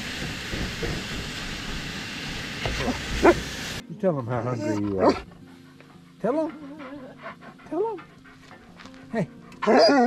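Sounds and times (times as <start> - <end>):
dog whining and yowling: 9.6 - 10.0.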